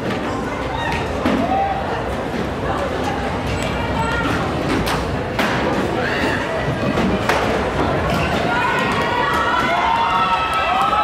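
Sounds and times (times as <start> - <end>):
noisy large hall: 0.0 - 11.0.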